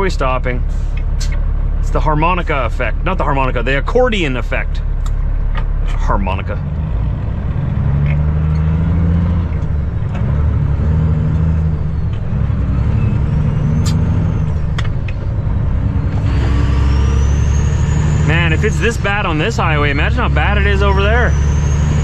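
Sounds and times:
diesel truck engine running: 0:00.0 - 0:22.0
faint high whistle: 0:16.8 - 0:18.2.

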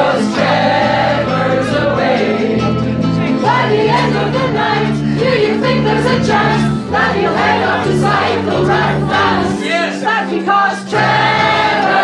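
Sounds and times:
bass guitar: 0:00.0 - 0:09.8, 0:10.9 - 0:12.0
group singing in unison: 0:00.0 - 0:12.0
strummed ukuleles: 0:00.0 - 0:12.0.

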